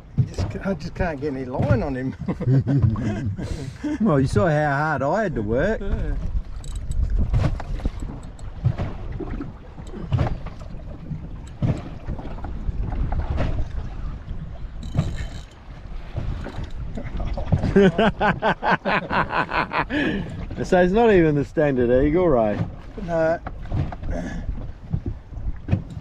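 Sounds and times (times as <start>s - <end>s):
water knocking and slapping hull: 0.0s - 26.0s
wind buffeting microphone: 0.0s - 26.0s
man laughing: 2.0s - 4.2s, 5.6s - 6.2s, 17.6s - 20.3s.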